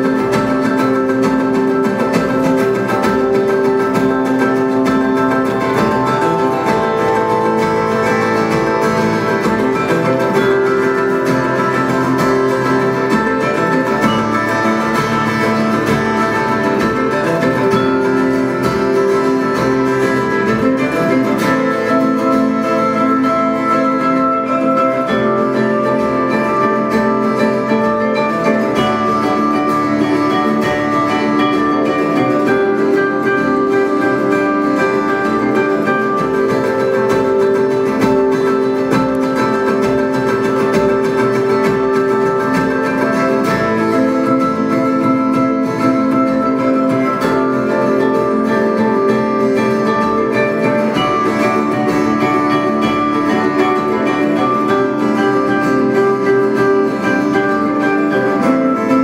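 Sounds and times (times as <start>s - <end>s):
plucked acoustic guitars: 0.0s - 59.0s.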